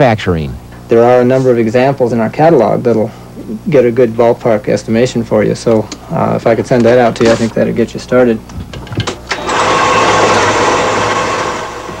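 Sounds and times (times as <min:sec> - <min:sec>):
photocopier whirring: 0:08.9 - 0:12.0.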